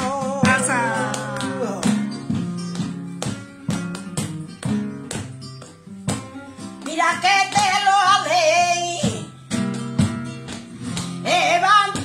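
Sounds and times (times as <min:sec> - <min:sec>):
flamenco acoustic guitar: 0:00.0 - 0:12.0
hand claps: 0:00.0 - 0:12.0.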